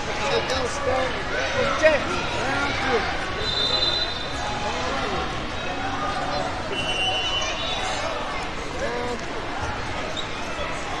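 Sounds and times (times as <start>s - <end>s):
chatter of many people: 0.0s - 11.0s.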